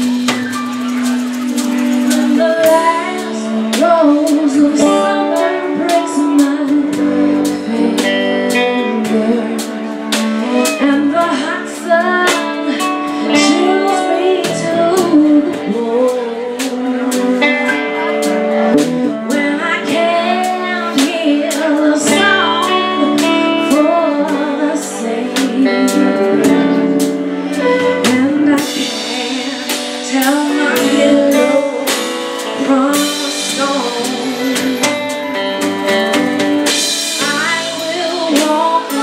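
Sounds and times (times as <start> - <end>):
drums: 0.0 - 39.0
woman singing: 1.4 - 39.0.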